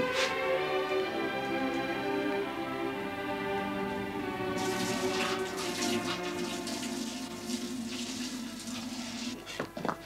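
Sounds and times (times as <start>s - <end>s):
background string music: 0.0s - 10.0s
liquid pouring and splashing: 4.6s - 9.4s.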